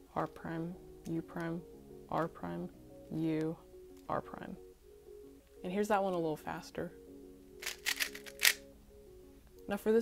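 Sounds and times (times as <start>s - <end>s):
background music: 0.0s - 10.0s
plastic puzzle cube clacks: 7.6s - 8.6s.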